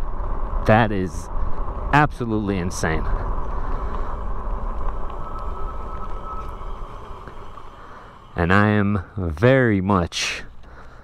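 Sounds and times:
wind rushing over microphone: 0:00.0 - 0:09.4
faint steady whine: 0:00.0 - 0:11.0
tires rumbling on asphalt: 0:00.0 - 0:11.0.

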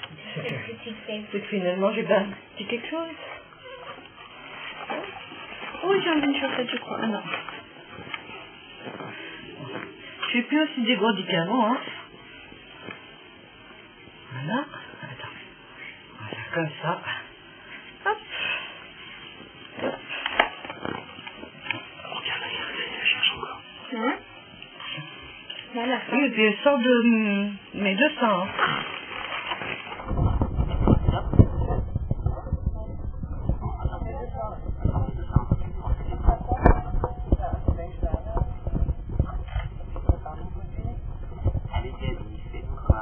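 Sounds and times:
woman's voice: 0:00.3 - 0:03.3, 0:05.8 - 0:07.5, 0:10.2 - 0:12.0, 0:25.7 - 0:28.6.

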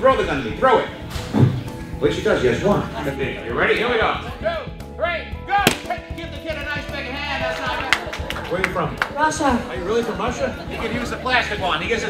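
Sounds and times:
background music: 0:00.0 - 0:12.0
balloon bursting: 0:05.7 - 0:06.1.

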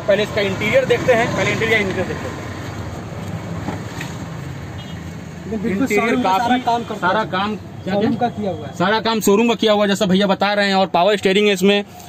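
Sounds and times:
motor vehicle rumbling: 0:00.0 - 0:08.9.

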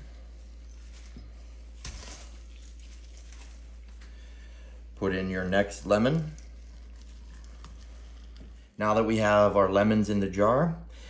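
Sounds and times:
steady low hum: 0:00.0 - 0:11.0
lemon handled in salt: 0:05.0 - 0:08.6.

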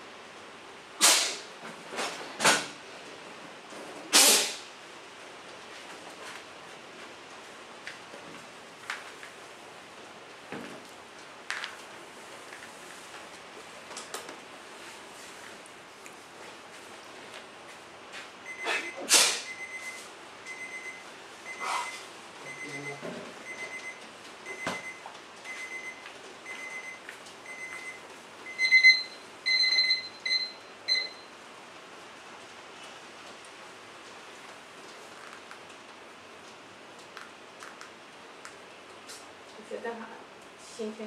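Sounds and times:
rustling noise: 0:05.4 - 0:18.4
electronic device beeping: 0:19.5 - 0:31.2.

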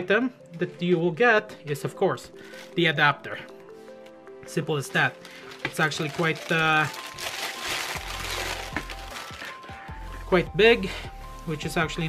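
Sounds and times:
plastic bag rustling and crinkling: 0:04.5 - 0:10.0.

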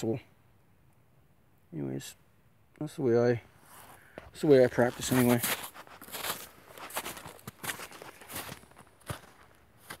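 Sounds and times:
soft footsteps and rustles: 0:03.6 - 0:10.0.

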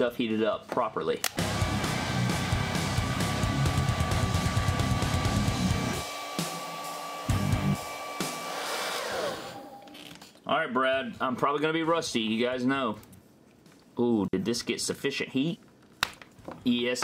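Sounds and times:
hair dryer running: 0:01.4 - 0:10.0
motor spinning down: 0:01.4 - 0:10.1.

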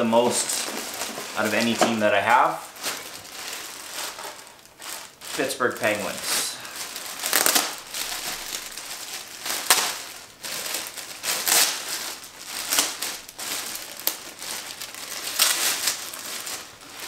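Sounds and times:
plastic bag crinkling: 0:00.0 - 0:17.0
sharp plastic crackle: 0:00.0 - 0:17.0.

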